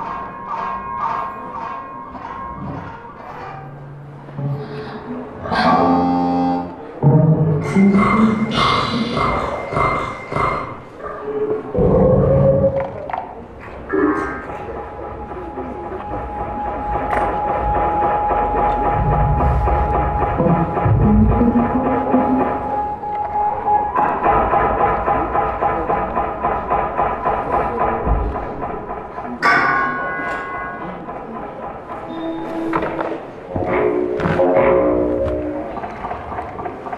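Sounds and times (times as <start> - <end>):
rapidly pulsing tones: 11.6 - 36.9
electronic music texture: 13.9 - 24.6
steady mid tone: 13.9 - 26.2
low thuds: 16.0 - 22.8.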